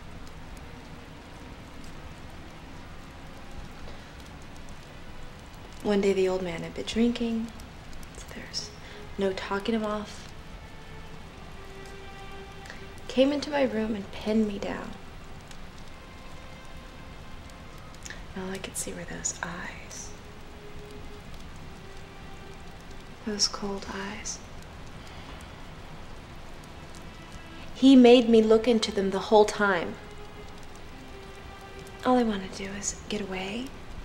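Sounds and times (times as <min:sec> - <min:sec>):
soft film score notes: 0:00.0 - 0:34.0
steady rain hiss: 0:00.0 - 0:34.0.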